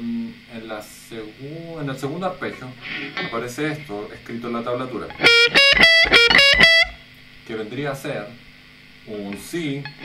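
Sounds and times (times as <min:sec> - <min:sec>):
distorted electric guitar arpeggio: 0:05.1 - 0:07.0.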